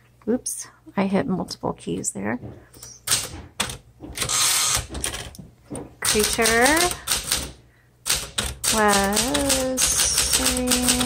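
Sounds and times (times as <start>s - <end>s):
typewriter carriage return rattle: 3.0s - 5.4s, 6.0s - 11.0s
typewriter key clacks: 6.0s - 11.0s.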